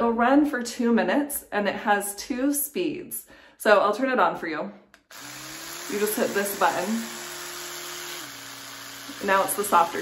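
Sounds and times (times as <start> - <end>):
electric toothbrush humming: 5.0 - 10.0.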